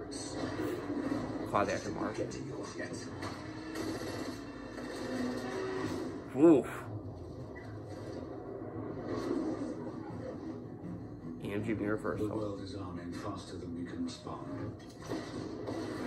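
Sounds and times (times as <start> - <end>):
trailer music through tv speakers: 0.0 - 16.0.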